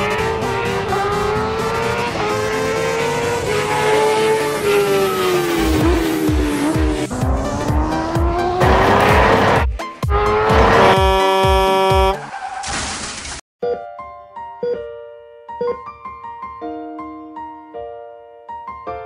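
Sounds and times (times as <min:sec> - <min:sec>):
small motorbike engines revving: 0:00.0 - 0:12.2
background music with low beat: 0:05.6 - 0:12.2
steady horn: 0:08.6 - 0:12.3.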